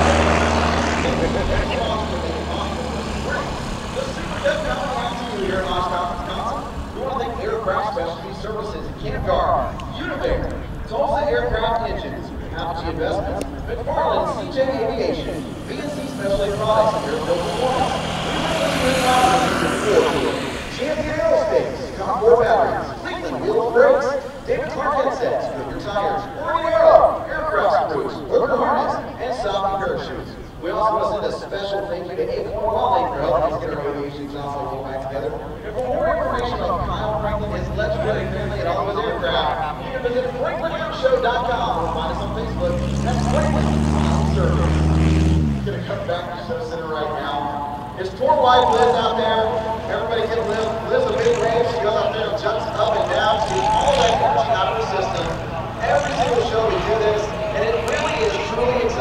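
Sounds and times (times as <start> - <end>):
propeller plane flying past: 0.0 - 59.0.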